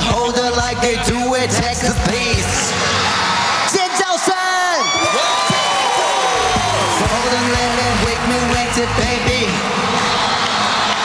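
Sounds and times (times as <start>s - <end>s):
voices whooping and calling: 2.8s - 7.5s.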